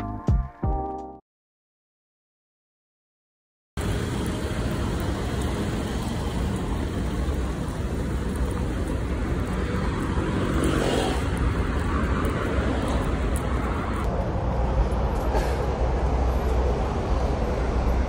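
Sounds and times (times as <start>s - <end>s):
road traffic rumble: 3.8s - 18.0s.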